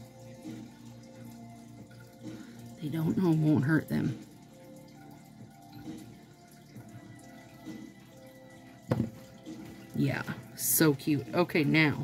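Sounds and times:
faint steady background tones: 0:00.0 - 0:12.0.

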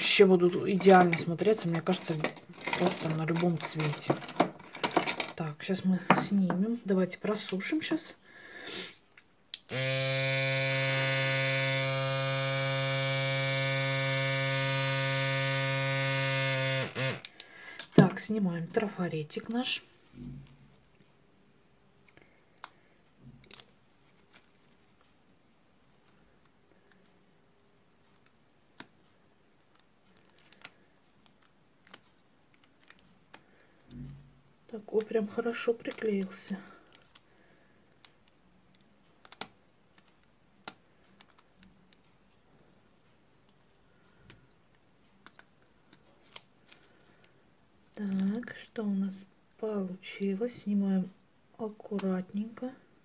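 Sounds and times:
airbrush compressor running: 0:09.7 - 0:17.3
faint small clicks and crackles: 0:22.0 - 0:49.6.

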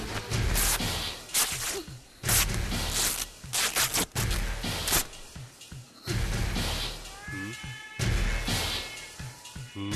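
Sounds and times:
meow-like sound effect: 0:07.0 - 0:09.9.

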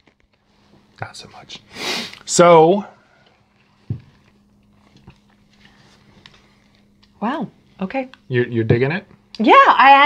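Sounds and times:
faint steady hum: 0:00.0 - 0:10.0
mouth and handling noises: 0:03.2 - 0:07.2
soft thump: 0:03.8 - 0:04.1.

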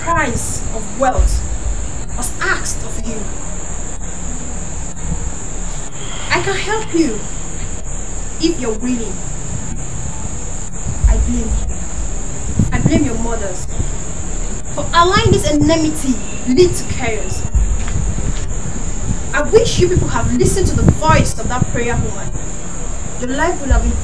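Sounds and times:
crickets chirping: 0:00.0 - 0:24.0
low thud: 0:00.5 - 0:03.2, 0:10.9 - 0:13.9, 0:17.4 - 0:21.3.

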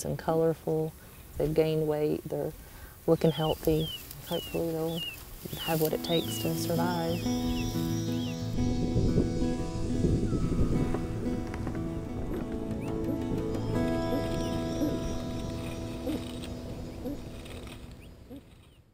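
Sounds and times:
music of sustained chords: 0:03.3 - 0:18.7
dense crackling rustle: 0:03.5 - 0:07.9, 0:10.8 - 0:18.9.

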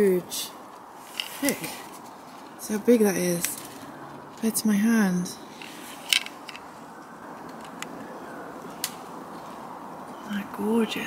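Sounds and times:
sharp handling clicks: 0:05.6 - 0:06.7.

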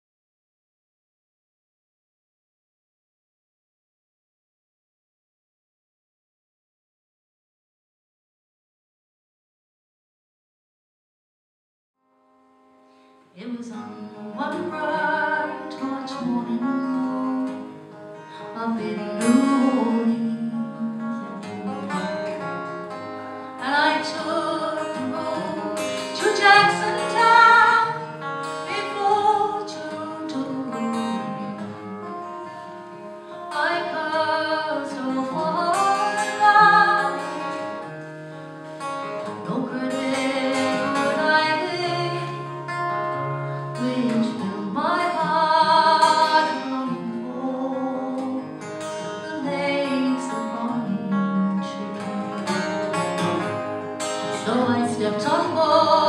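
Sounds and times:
acoustic guitar: 0:12.1 - 0:56.0
woman singing folk ballad: 0:13.4 - 0:38.0, 0:38.8 - 0:56.0.

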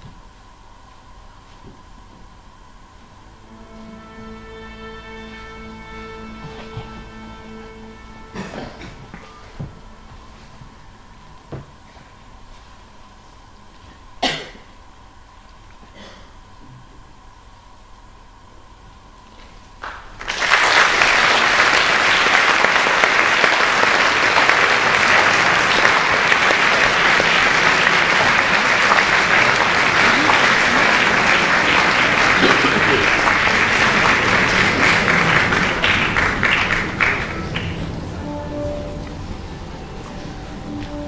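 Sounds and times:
audience applause: 0:19.8 - 0:41.0.

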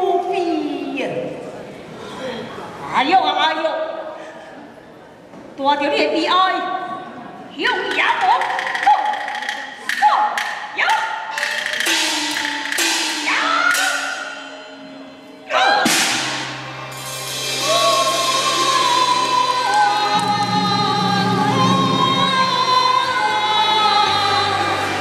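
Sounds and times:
ringing percussion strikes: 0:09.9 - 0:18.4
cymbal crash: 0:15.8 - 0:18.7.

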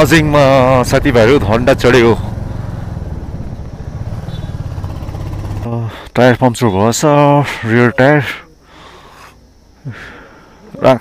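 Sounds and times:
motorcycle engine running: 0:00.0 - 0:06.1.

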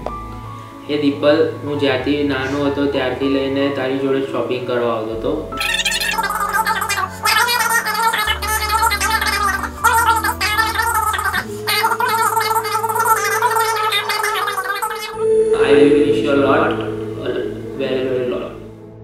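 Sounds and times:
background music with bass notes: 0:00.0 - 0:06.0
man talking: 0:15.5 - 0:18.6.

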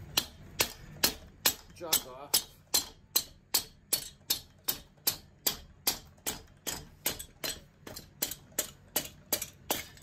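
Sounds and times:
sharp knocks on engine cylinder: 0:00.0 - 0:01.7.

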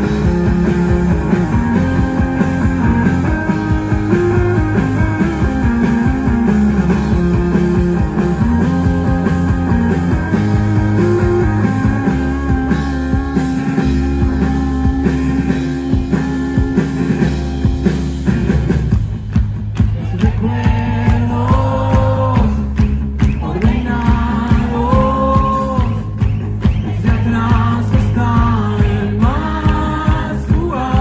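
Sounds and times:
electric guitar sustained notes: 0:00.0 - 0:18.8
drum kit playing: 0:00.0 - 0:31.0.

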